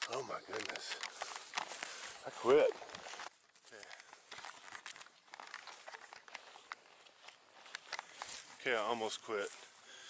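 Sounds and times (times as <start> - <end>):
camera handling clicks and rustles: 0.0 - 2.2, 2.8 - 8.5.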